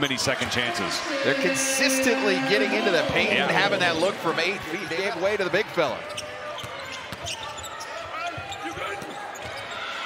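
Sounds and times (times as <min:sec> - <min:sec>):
murmur of crowd voices: 0:00.0 - 0:10.0
sneaker squeaks: 0:06.0 - 0:09.8.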